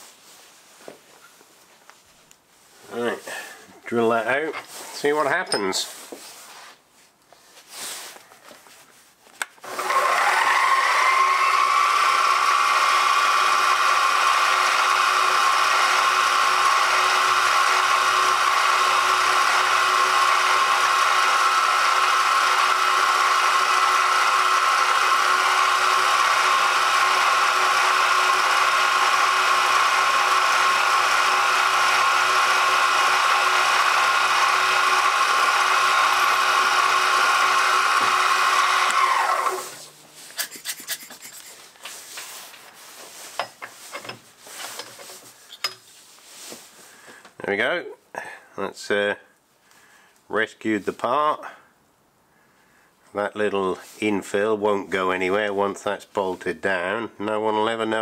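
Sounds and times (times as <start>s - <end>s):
drill bit boring into metal: 9.6s - 39.7s
milling machine motor whining: 9.7s - 39.8s.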